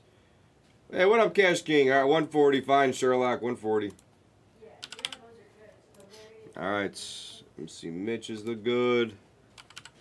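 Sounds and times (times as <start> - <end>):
computer keyboard clicks: 4.8 - 5.2, 9.6 - 10.0.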